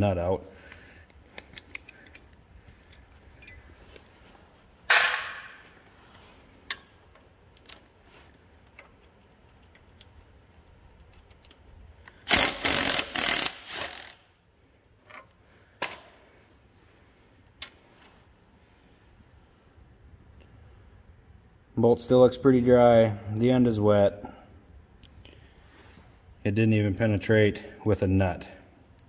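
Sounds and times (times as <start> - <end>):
wrench clattering strokes: 0.7 - 4.2, 4.9 - 14.2
wrench metal clicks and clinks: 1.3 - 3.7, 12.2 - 14.2.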